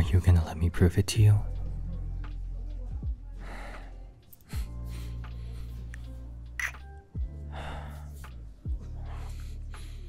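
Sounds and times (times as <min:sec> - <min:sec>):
lofi background music: 0:00.0 - 0:10.0
lip-smacking kiss clicks: 0:06.0 - 0:06.9.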